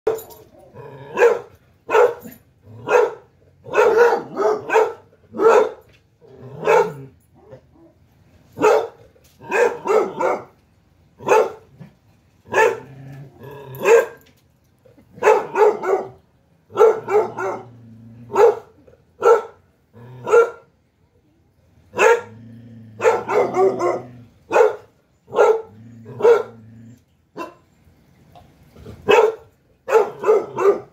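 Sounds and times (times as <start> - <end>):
dog barking deeply: 1.0 - 5.8, 6.5 - 7.1, 8.6 - 10.5, 11.2 - 11.7, 12.5 - 13.0, 15.2 - 20.7, 21.9 - 26.6, 29.0 - 30.9.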